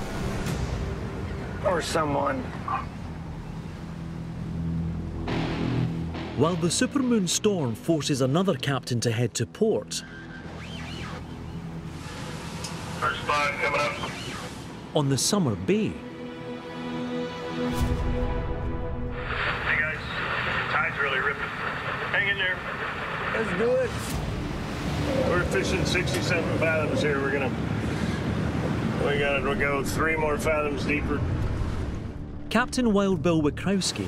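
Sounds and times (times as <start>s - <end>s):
boat engines droning: 0.0s - 8.9s, 9.5s - 17.6s, 19.4s - 34.0s
radio hiss: 12.7s - 14.7s, 19.3s - 24.1s
voice over radio: 13.0s - 14.4s, 19.6s - 23.9s
low engine rumble: 19.1s - 34.0s.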